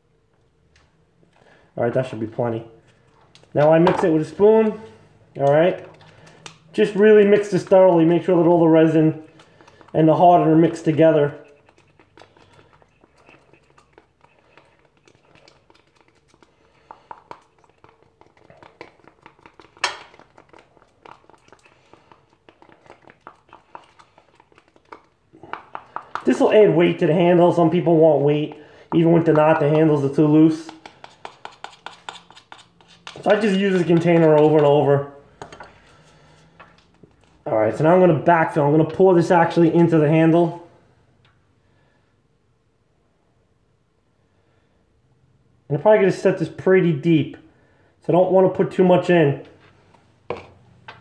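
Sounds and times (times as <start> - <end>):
spoon scraping plastic cup: 3.8 - 36.8.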